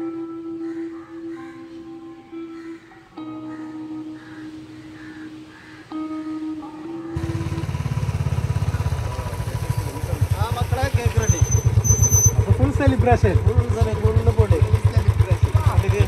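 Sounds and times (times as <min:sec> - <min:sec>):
music: 0:00.0 - 0:08.0
motorcycle engines running: 0:07.1 - 0:16.0
people's voices: 0:08.5 - 0:16.0.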